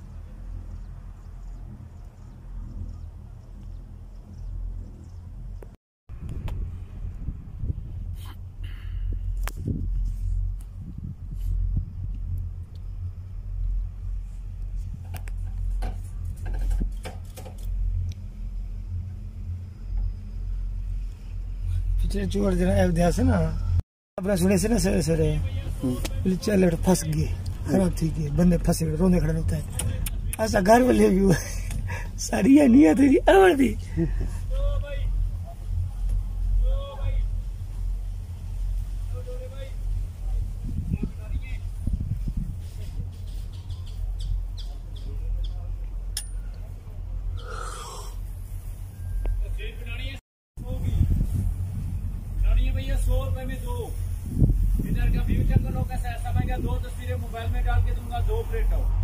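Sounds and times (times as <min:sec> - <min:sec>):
wind buffeting microphone: 0:00.0 - 0:23.8, 0:24.4 - 0:46.1, 0:50.6 - 0:59.0.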